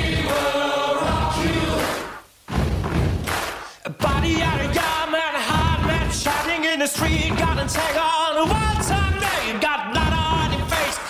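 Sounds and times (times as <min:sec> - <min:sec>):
dance track with sung vocals: 0:03.7 - 0:11.0.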